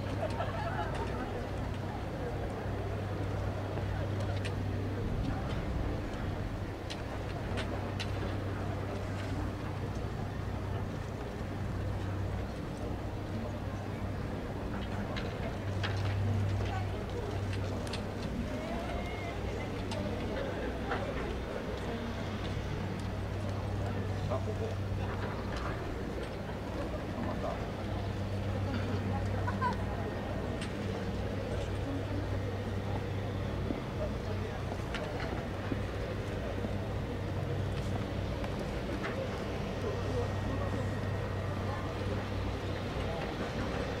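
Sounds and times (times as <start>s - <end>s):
faint voices: 0.0s - 44.0s
steady low hum: 0.0s - 44.0s.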